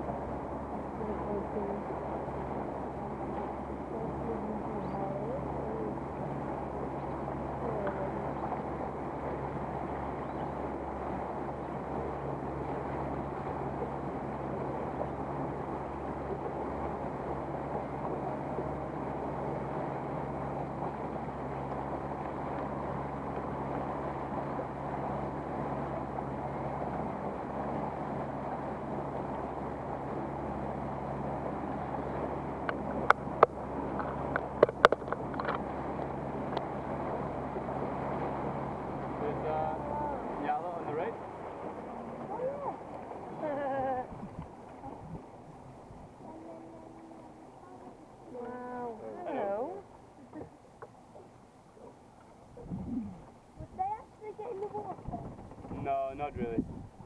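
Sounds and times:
boat motor running: 0:00.0 - 0:57.0
water rushing past hull: 0:00.0 - 0:57.0.

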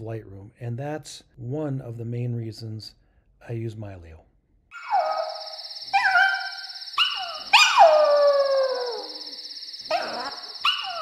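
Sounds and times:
dog howling: 0:04.8 - 0:09.2, 0:09.9 - 0:11.0.

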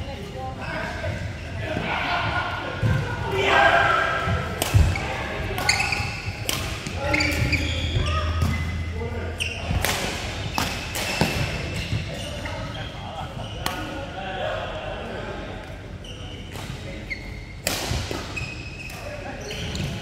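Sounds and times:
players' voices: 0:00.0 - 0:20.0
racket striking shuttlecock: 0:05.6 - 0:07.6.

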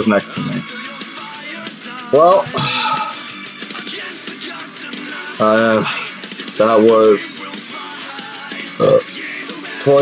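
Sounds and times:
background guitar music: 0:00.0 - 0:10.0
man burping: 0:02.4 - 0:03.4, 0:08.8 - 0:09.1.

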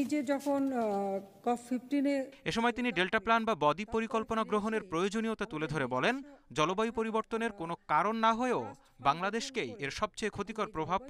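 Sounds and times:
person talking: 0:00.0 - 0:11.0.

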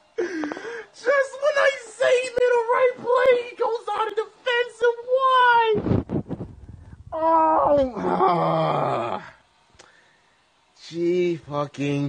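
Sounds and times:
person wailing: 0:07.1 - 0:09.4.

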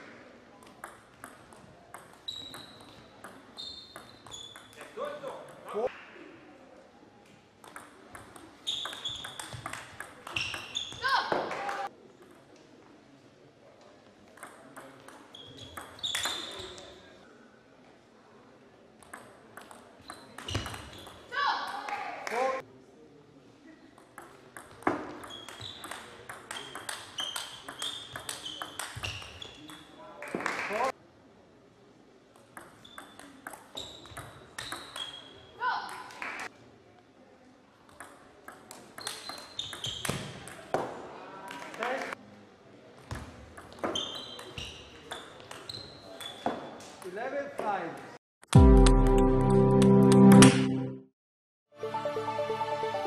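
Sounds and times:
short high squeaks: 0:03.6 - 0:04.7, 0:43.9 - 0:46.8.

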